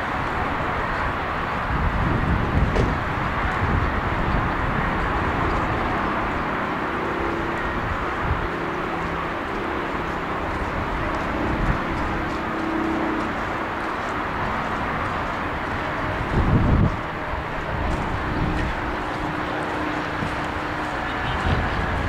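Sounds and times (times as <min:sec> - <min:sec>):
wind rumbling on microphone: 0:00.0 - 0:22.0.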